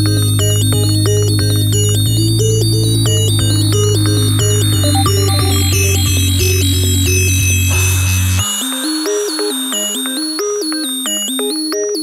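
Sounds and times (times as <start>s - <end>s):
higher synth bassline: 0.0s - 8.5s
heavy low bass: 0.0s - 8.7s
synthesizer arpeggio: 0.0s - 11.1s.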